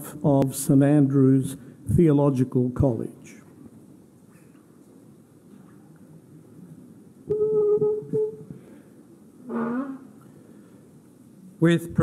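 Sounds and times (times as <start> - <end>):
steady ringing tone: 7.3 - 8.7.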